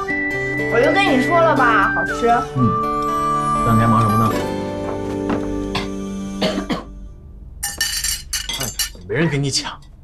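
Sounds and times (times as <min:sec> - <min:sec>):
cutlery clinking on china and glass: 0:07.6 - 0:09.1.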